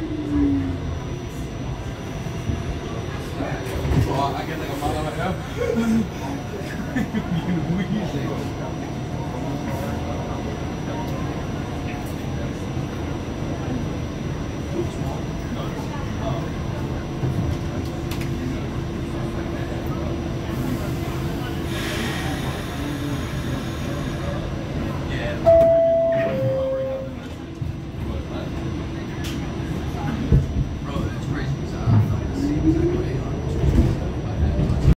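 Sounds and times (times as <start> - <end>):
subway train rumble: 0.0 - 35.0
two-note door chime: 25.5 - 27.1.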